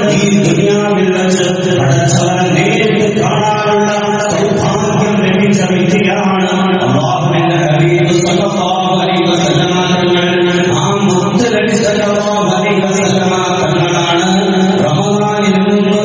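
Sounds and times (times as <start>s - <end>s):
man chanting in long held notes: 0.0s - 16.0s.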